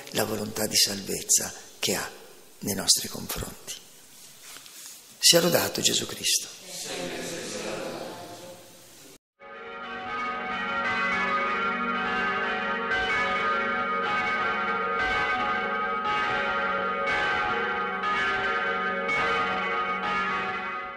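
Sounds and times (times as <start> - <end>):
church bells ringing: 9.4 - 20.9.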